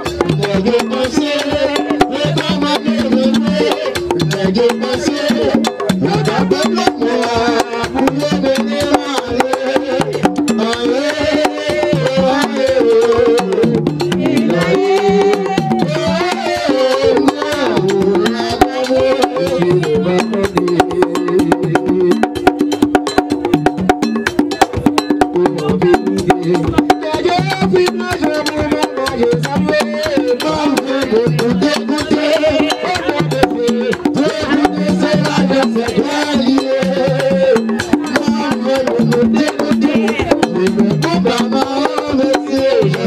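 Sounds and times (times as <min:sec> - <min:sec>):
sung chant: 0:00.0 - 0:22.0, 0:26.7 - 0:43.0
hand drums beating fast rhythm: 0:00.0 - 0:43.0.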